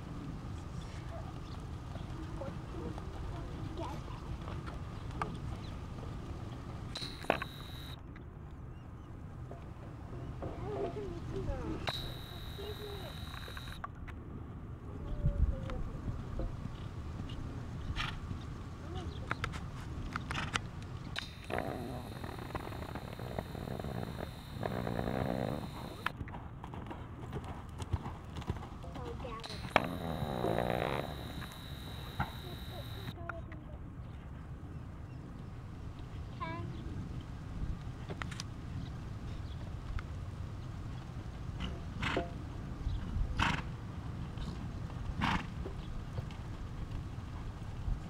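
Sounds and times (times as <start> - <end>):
horse hooves on dirt: 0.9 - 6.9, 16.2 - 31.0, 37.1 - 48.0
horse snorting: 21.2 - 26.1, 29.4 - 31.6
horse hoofbeats on dirt: 24.6 - 29.6, 43.4 - 48.0.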